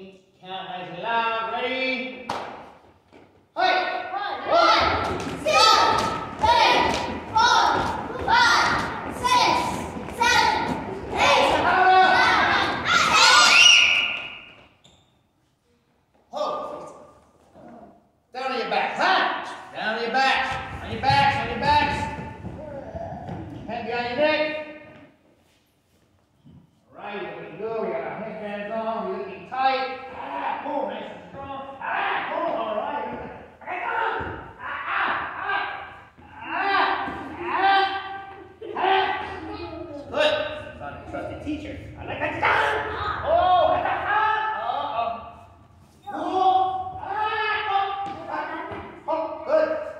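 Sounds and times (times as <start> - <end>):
people talking in echoing hall: 0.0 - 49.9
children shouting together: 4.3 - 14.2.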